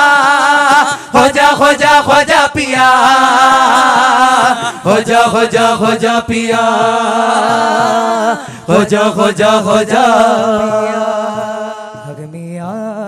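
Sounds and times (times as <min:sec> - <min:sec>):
percussion beat: 0:00.0 - 0:13.0.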